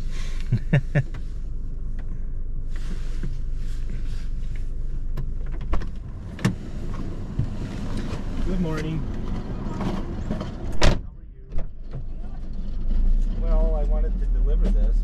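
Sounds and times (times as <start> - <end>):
parked car engine humming: 0.0 - 15.0
car door unlatching and opening: 5.1 - 8.2.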